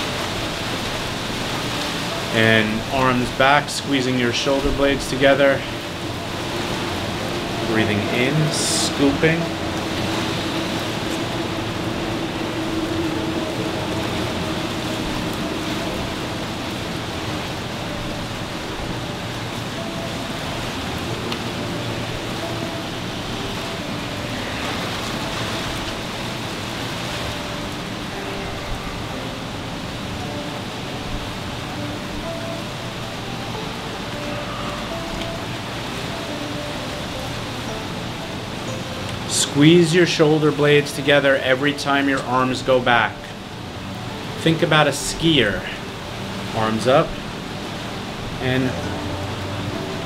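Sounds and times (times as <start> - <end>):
faint held musical tones: 0.0 - 50.0
steady rushing noise: 0.0 - 50.0.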